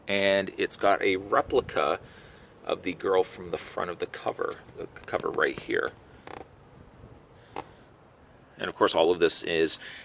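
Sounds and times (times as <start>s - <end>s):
cardboard box creak: 6.2s - 6.6s.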